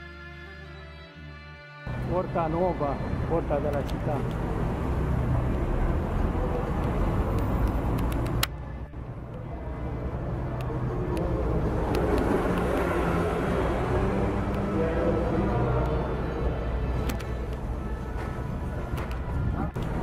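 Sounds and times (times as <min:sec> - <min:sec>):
passing cars rumbling: 0:01.9 - 0:20.0
faint indistinct voices: 0:05.9 - 0:20.0.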